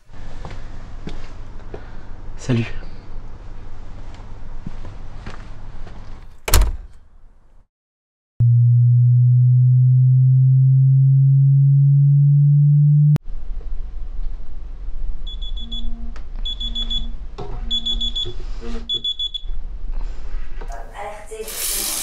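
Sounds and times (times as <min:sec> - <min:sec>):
loud low hum: 0:08.4 - 0:17.6
smartphone alarm beeping: 0:15.3 - 0:17.1, 0:17.7 - 0:19.5.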